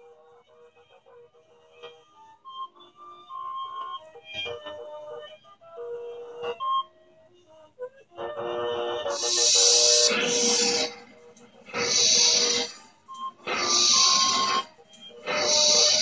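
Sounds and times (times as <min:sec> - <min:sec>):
loud hiss: 0:09.1 - 0:11.0, 0:11.7 - 0:12.8, 0:13.5 - 0:14.6, 0:15.2 - 0:16.0
engine noise sound effect: 0:09.1 - 0:12.8, 0:13.4 - 0:14.6
electronic tune: 0:09.1 - 0:16.0.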